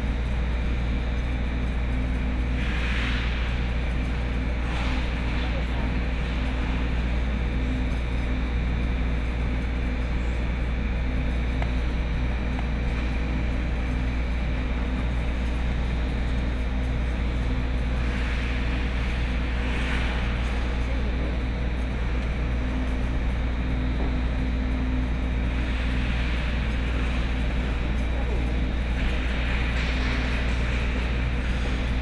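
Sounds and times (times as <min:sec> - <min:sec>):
steady low hum: 0:00.0 - 0:32.0.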